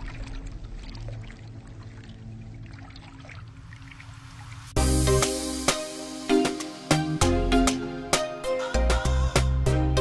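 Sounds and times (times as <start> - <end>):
trickling water-like ticks: 0.0 - 4.8.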